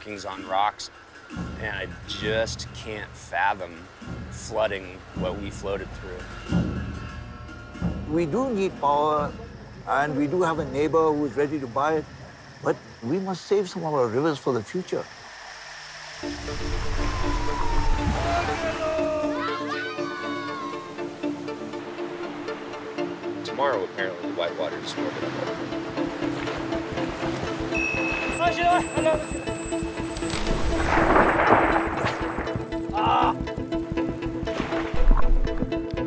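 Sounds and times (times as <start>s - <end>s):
pulsing soundtrack music: 0.0s - 13.2s, 15.1s - 36.0s
whitewater rushing: 30.2s - 33.0s.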